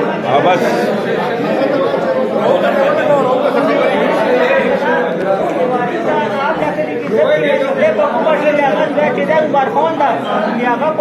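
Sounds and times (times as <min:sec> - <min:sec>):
men talking at once: 0:00.0 - 0:11.0.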